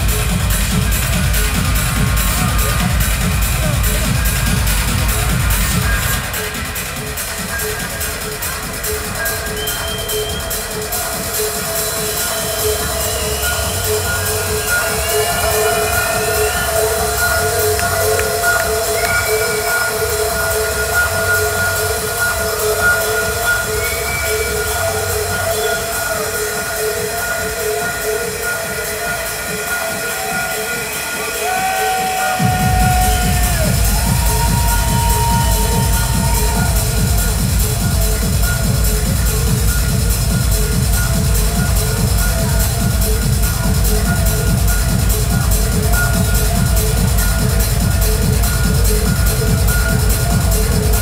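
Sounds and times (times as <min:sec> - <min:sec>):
bass line: 0:00.0 - 0:30.3, 0:32.4 - 0:51.0.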